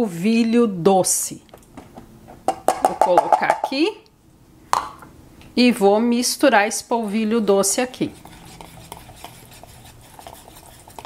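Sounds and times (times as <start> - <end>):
whisk scraping in a bowl: 7.0 - 11.0.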